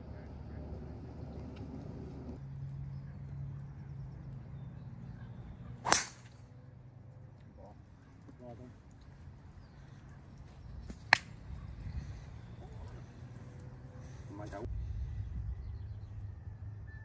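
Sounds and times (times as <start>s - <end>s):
golf club striking ball: 5.8s - 6.4s
low rumble: 14.7s - 17.0s.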